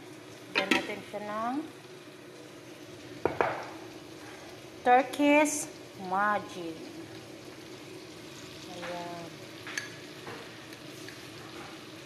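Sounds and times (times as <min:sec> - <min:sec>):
food frying in pot: 0:00.0 - 0:12.0.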